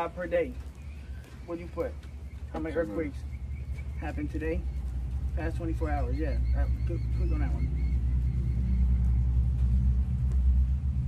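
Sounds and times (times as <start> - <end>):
engine humming low rumble: 0.0 - 11.0.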